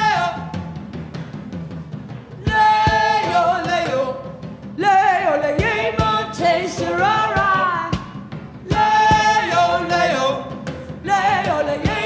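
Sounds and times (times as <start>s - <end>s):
woman singing: 2.4s - 12.0s.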